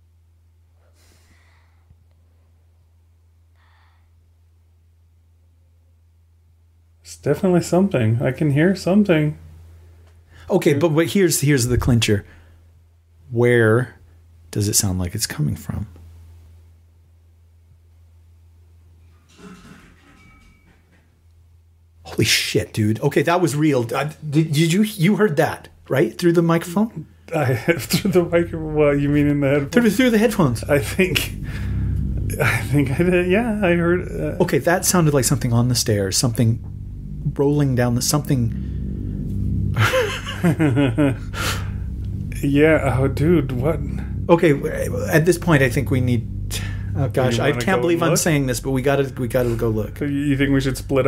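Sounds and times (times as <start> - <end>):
steady low hum: 0.0 - 51.0
breathy gasp: 0.8 - 1.9, 3.6 - 4.2
man laughing nervously: 27.4 - 28.3, 39.8 - 41.7.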